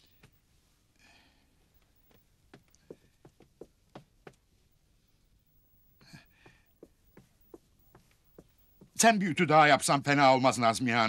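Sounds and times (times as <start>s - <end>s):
footsteps on hard floor: 1.8s - 4.4s, 5.7s - 9.0s.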